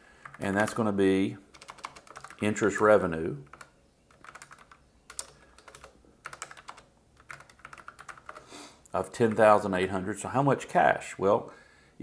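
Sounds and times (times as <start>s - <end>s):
computer keyboard typing: 0.2s - 8.5s, 9.1s - 9.6s.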